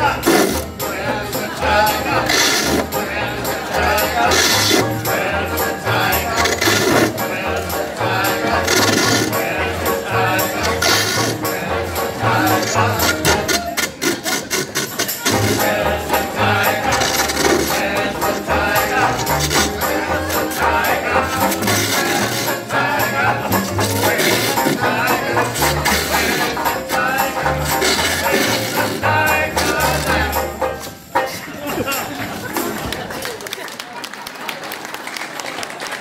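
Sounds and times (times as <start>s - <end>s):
trumpet: 0.0s - 31.1s
double bass walking: 0.0s - 32.8s
banjo: 0.0s - 33.4s.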